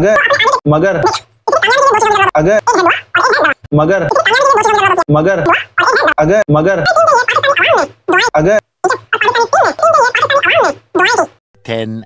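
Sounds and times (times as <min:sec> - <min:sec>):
man babbling rapidly: 0:00.0 - 0:11.3.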